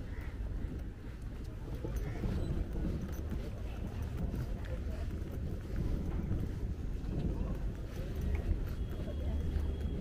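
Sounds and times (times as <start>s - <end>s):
faint distant voices: 0.0s - 10.0s
wind rumbling on microphone: 0.0s - 10.0s.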